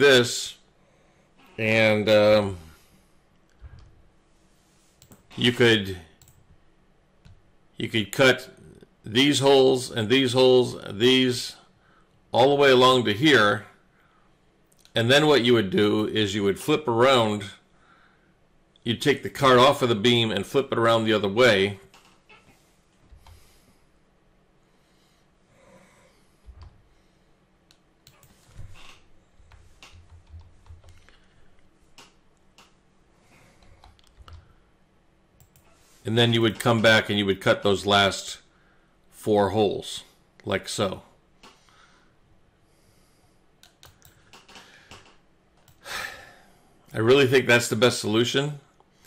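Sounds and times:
short breath: 0:17.8 - 0:18.4, 0:41.5 - 0:43.4.

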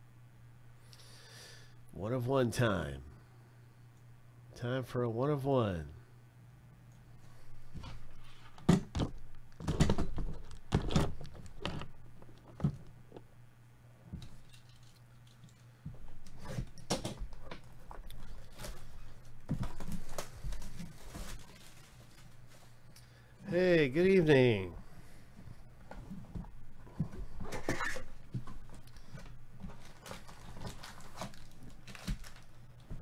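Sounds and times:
plastic wrap crinkling: 0:16.2 - 0:22.9, 0:27.8 - 0:33.0.

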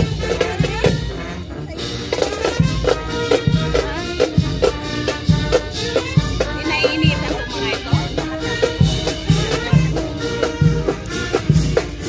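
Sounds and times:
bass drum and snare beat: 0:00.0 - 0:12.0
marching brass band playing: 0:00.0 - 0:12.0.

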